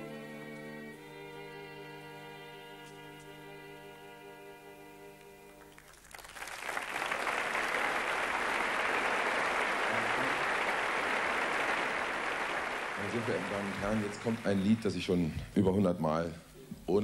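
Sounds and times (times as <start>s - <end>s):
audience applauding: 5.6s - 15.2s.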